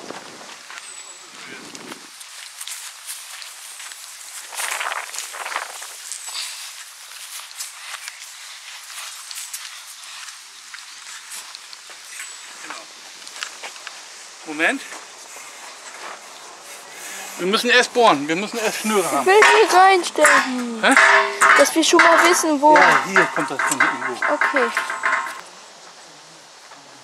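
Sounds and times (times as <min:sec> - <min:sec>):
footsteps on grass and soil: 0:01.6 - 0:17.5.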